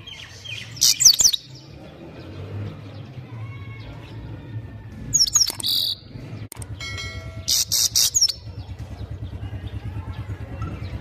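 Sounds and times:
goldfinch twittering song: 6.7 - 9.8.

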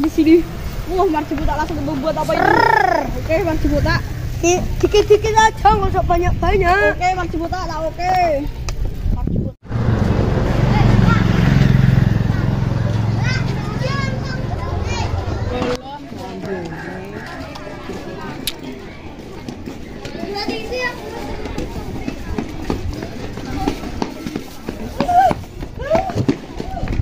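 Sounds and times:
faint children's voices: 0.0 - 9.4, 10.2 - 27.0
running footsteps on pavement: 0.0 - 10.1, 12.8 - 27.0
small motorcycle engine passing: 0.3 - 5.8, 9.7 - 15.8.

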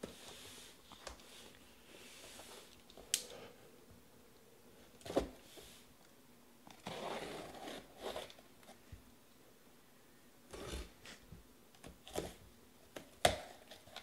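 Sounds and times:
cardboard scraping and rubbing: 6.7 - 8.4.

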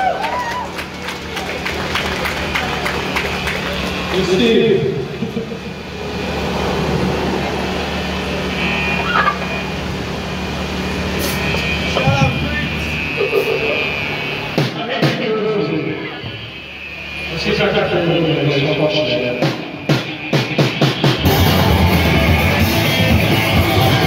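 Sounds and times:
guitar amplifier hum: 0.0 - 24.0
scattered voices: 11.7 - 24.0.

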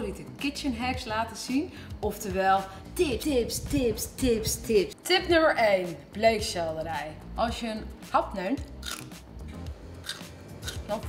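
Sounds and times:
crisp crunching while chewing: 8.8 - 9.1, 10.0 - 10.8
biting into celery: 8.8 - 9.2, 10.0 - 11.0.

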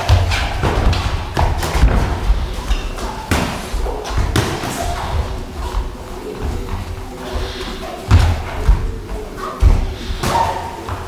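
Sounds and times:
heavy thuds of gloved blows: 0.0 - 5.9.

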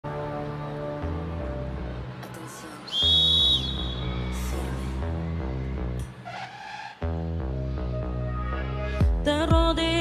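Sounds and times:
sharp whistle blast: 2.9 - 4.2.

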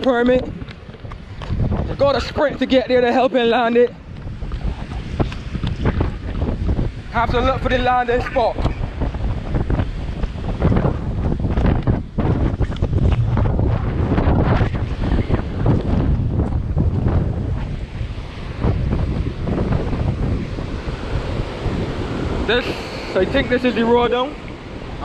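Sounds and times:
wind buffeting microphone: 0.0 - 25.0
surf breaking on rocks: 5.1 - 25.0.

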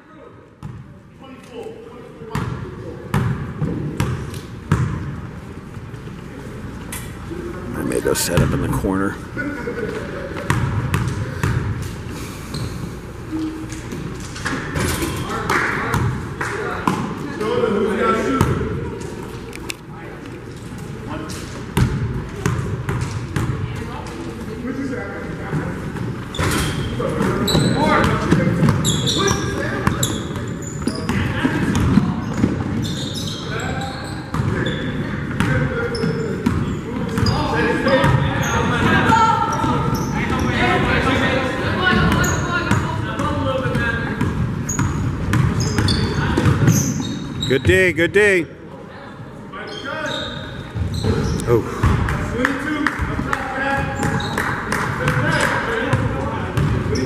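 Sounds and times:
sneakers squeaking: 2.3 - 5.4, 9.9 - 16.2, 25.5 - 40.8, 41.8 - 47.8, 49.6 - 52.1, 53.7 - 57.0
basketball bouncing on wooden court: 2.4 - 5.0, 44.2 - 46.8, 56.6 - 57.0
voices chattering: 6.3 - 10.5.

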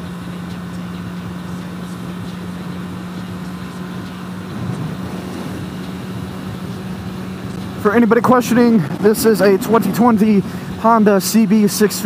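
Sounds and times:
motorcycle engine hum: 0.0 - 12.0
road noise: 0.0 - 12.0
wind noise: 4.3 - 10.8.

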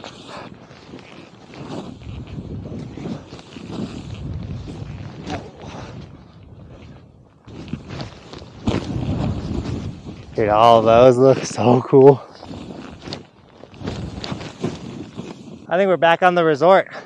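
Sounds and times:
wind buffeting microphone: 0.0 - 15.8
snowboard scraping through snow: 0.0 - 15.9.

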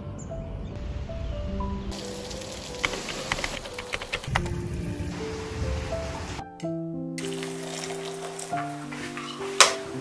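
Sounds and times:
soft background music: 0.0 - 10.0
steady rain falling: 2.0 - 6.4.

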